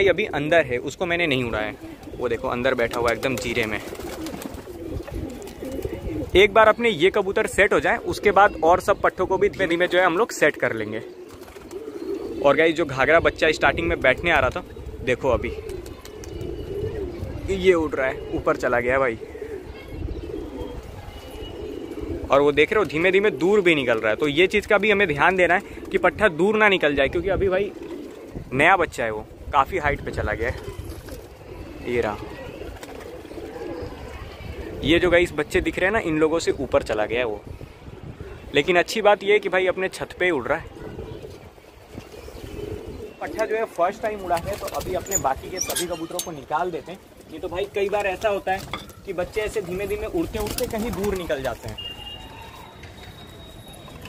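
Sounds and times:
pigeons cooing: 0.0 - 38.5, 39.6 - 52.7.

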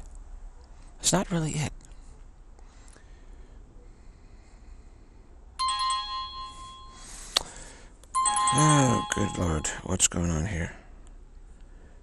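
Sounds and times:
phone ringtone chime: 5.6 - 7.3, 8.2 - 9.8.

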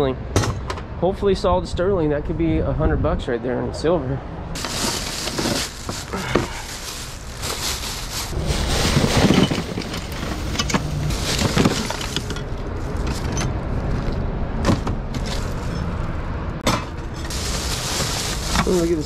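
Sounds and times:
steady low rumble: 1.3 - 19.0
plastic bags rustling: 4.6 - 13.3, 15.2 - 15.9, 17.0 - 19.0.

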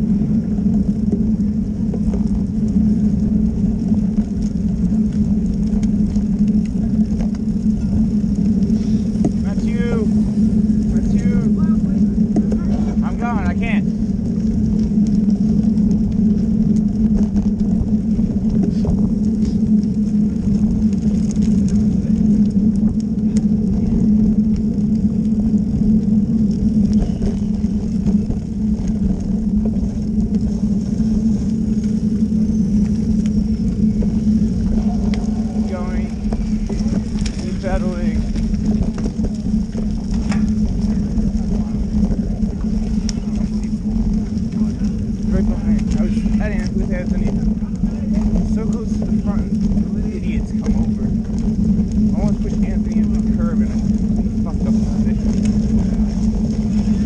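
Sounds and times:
bicycle road rumble: 0.0 - 57.0
wind: 0.0 - 57.0.

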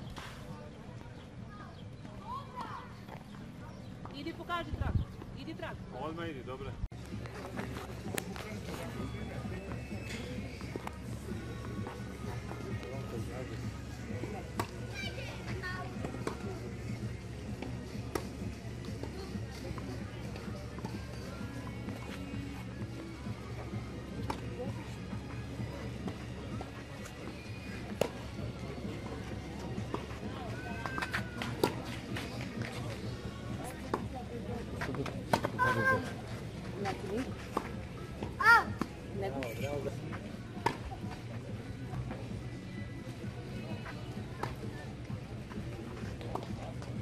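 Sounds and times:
background music: 0.0 - 47.0
rackets hitting tennis balls: 34.7 - 36.2.

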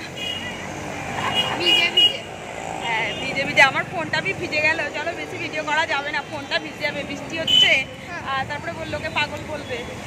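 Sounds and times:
people talking: 0.0 - 10.0
traffic on wet street: 0.0 - 10.0.

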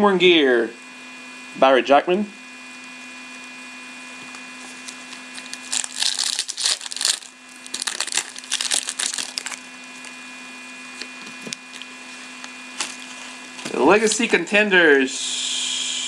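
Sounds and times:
foil wrapper crinkling: 4.2 - 10.2, 12.7 - 13.3
cards being handled: 4.3 - 10.2, 12.8 - 13.8.

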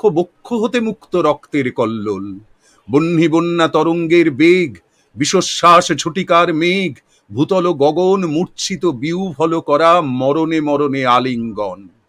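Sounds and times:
man reciting poetry: 0.0 - 12.0.

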